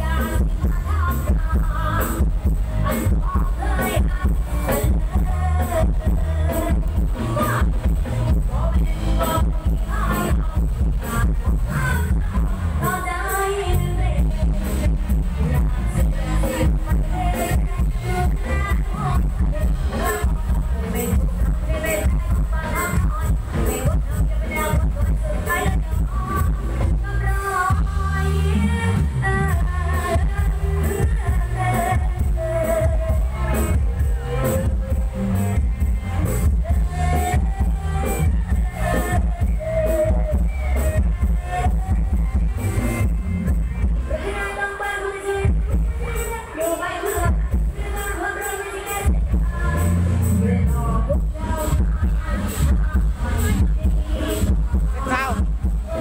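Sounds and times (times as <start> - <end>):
loud music with heavy bass: 0.0 - 56.0
person singing: 0.0 - 56.0
drum beat: 54.5 - 56.0.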